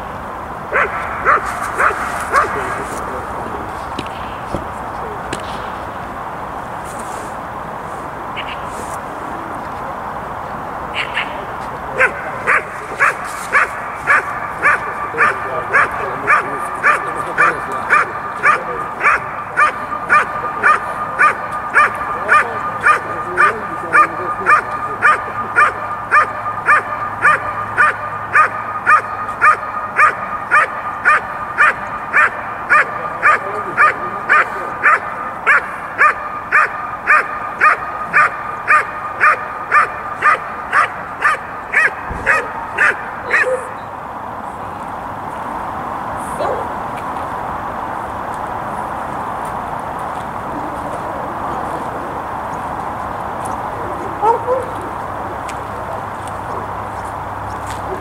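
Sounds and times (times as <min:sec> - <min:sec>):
dog barking: 0:00.7 - 0:03.0, 0:11.9 - 0:43.8, 0:54.0 - 0:54.9.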